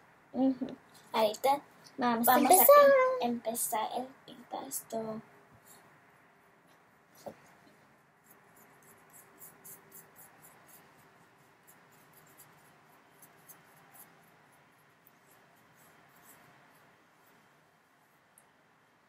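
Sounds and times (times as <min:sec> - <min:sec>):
paintbrushes ticking and scratching: 0:08.2 - 0:18.5.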